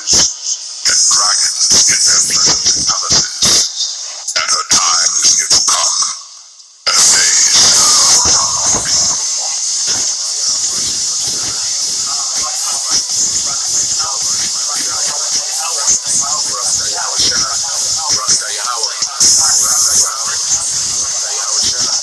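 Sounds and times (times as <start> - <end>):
muffled voice: 0.0 - 6.2, 6.9 - 22.0
loud steady hiss: 0.0 - 22.0.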